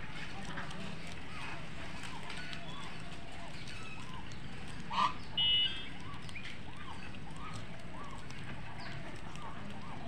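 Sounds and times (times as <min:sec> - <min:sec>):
geese calling softly: 0:00.4 - 0:10.0.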